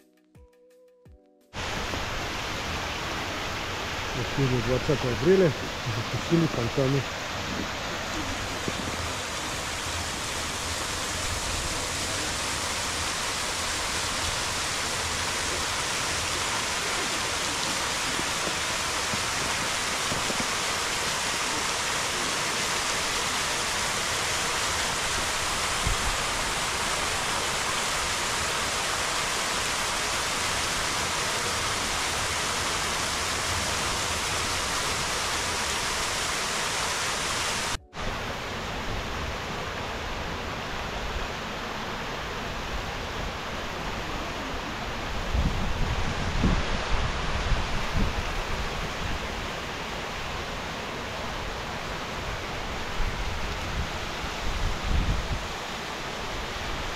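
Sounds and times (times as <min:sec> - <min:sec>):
fountain jets and falling water: 0:01.6 - 0:56.9.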